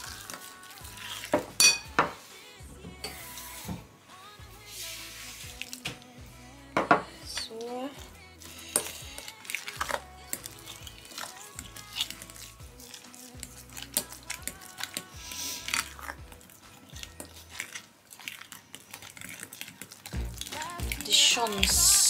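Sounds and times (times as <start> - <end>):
background music: 0.0 - 22.0
metal spoon scraping glass bowl: 8.4 - 16.2.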